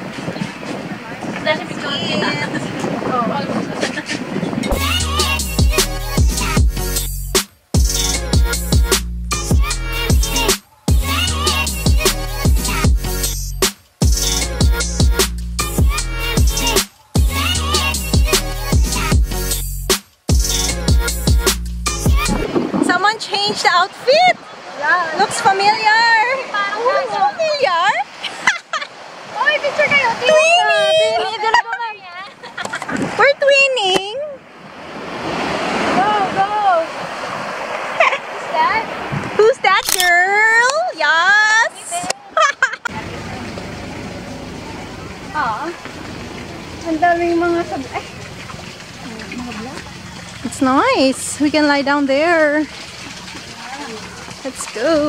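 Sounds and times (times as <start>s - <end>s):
small waves washing on shore: 0.0s - 4.8s, 22.4s - 55.0s
outdoor noise: 0.0s - 55.0s
music with bass beat: 4.7s - 22.5s
high voices laughing and calling: 26.4s - 33.5s, 37.8s - 38.6s, 41.6s - 43.0s, 46.7s - 50.4s.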